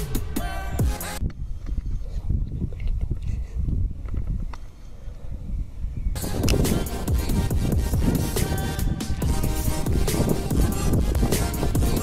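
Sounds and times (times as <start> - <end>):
music: 0.0 - 1.2, 6.2 - 12.0
wind rumble on microphone: 1.2 - 12.0.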